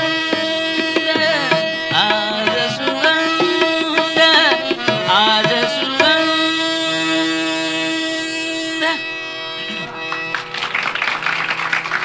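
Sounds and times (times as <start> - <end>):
faint drone: 6.6 - 12.0
audience applause: 9.7 - 12.0.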